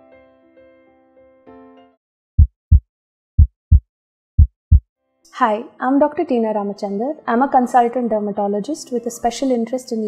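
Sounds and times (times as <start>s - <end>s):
heartbeat double thump: 2.4s - 2.8s, 3.4s - 3.8s, 4.4s - 4.8s.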